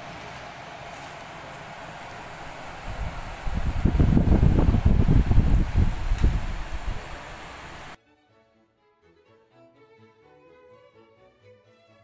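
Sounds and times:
steady fan-like noise: 0.0s - 8.0s
low buffeting on microphone: 1.7s - 8.0s.

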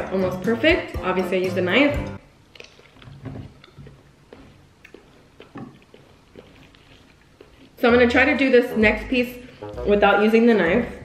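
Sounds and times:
person chewing wet food: 2.2s - 8.0s.

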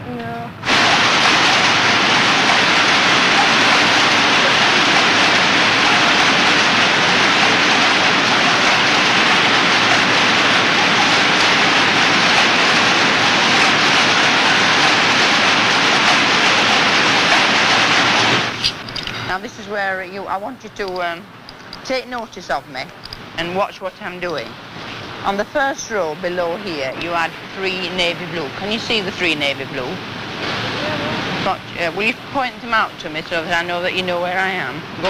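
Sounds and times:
loud steady rushing noise: 0.0s - 21.4s, 22.0s - 35.0s.

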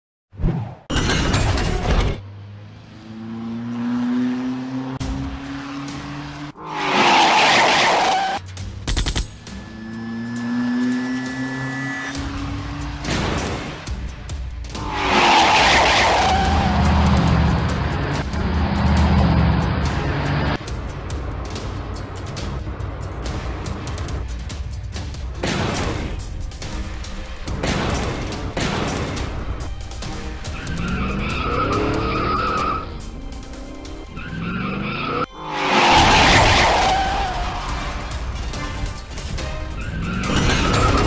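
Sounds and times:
cars driving past: 2.2s - 8.4s, 9.5s - 14.0s, 14.8s - 24.0s
car engine revving: 2.2s - 8.8s, 9.4s - 24.3s, 29.1s - 41.0s.

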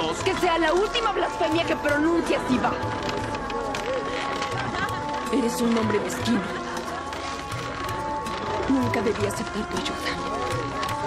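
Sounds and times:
held background music tones: 0.0s - 11.0s
murmur of distant voices: 0.0s - 11.0s.

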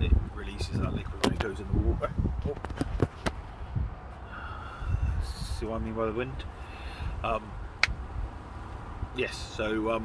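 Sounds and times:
wind buffeting a tent: 0.0s - 10.0s.

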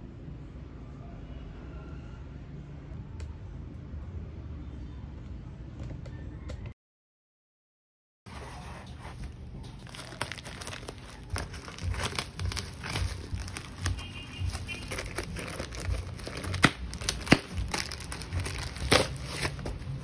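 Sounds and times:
bubble wrap crinkling: 8.3s - 20.0s.

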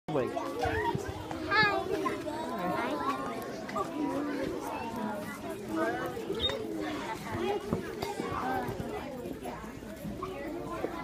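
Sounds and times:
children chattering and calling out: 0.1s - 11.0s
child's high-pitched voice: 0.4s - 9.4s.

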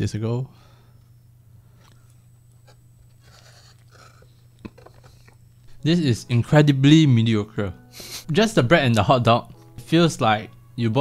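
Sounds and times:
person chewing food: 1.8s - 5.4s.

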